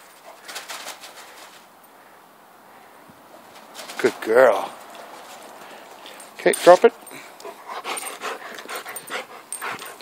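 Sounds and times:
dog panting: 7.2s - 10.0s.

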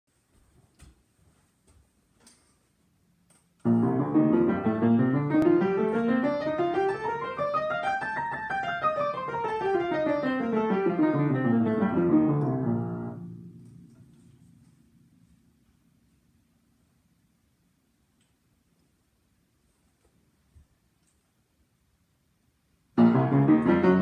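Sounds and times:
upright piano scale: 3.6s - 14.2s, 23.0s - 24.0s.

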